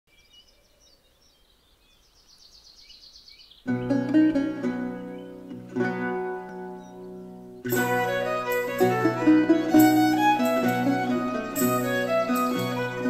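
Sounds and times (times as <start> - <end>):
birds chirping and trilling: 0.1 - 13.0
lute and viol early music: 3.7 - 13.0.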